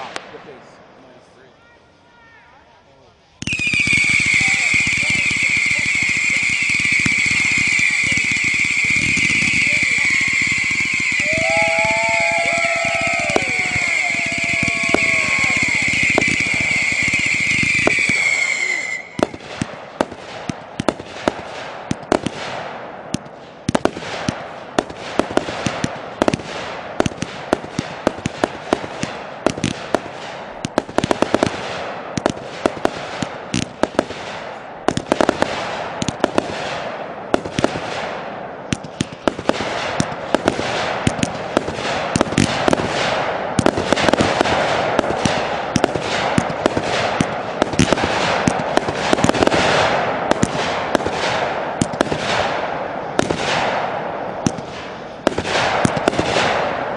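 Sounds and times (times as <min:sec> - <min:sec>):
fireworks bangs and pops: 0:00.0 - 0:01.0, 0:03.4 - 0:56.9
fireworks crackle: 0:00.0 - 0:56.9
firework whistle: 0:01.0 - 0:19.7.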